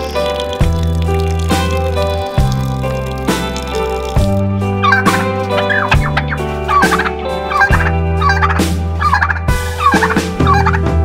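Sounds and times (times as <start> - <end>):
background music with beat: 4.2 - 11.0
turkey gobbling: 4.8 - 10.8.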